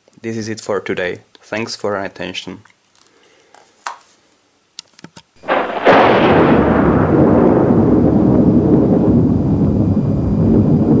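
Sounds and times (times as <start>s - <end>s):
boom with deep rumble: 5.5s - 11.0s.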